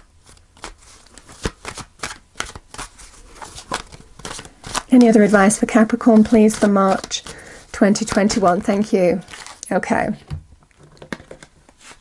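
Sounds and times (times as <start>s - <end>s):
cards being shuffled: 0.0s - 9.6s.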